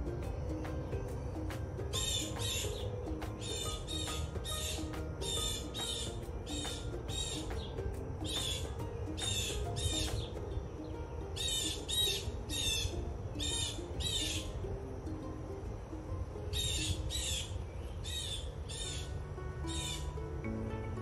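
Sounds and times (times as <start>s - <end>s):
bird chirping: 0.0s - 14.5s, 16.5s - 20.9s
quiet background melody: 0.0s - 21.0s.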